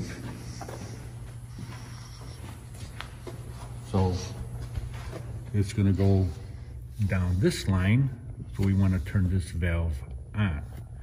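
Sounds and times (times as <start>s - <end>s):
faint shuffling movement: 0.0s - 11.0s
steady low hum: 0.0s - 11.0s.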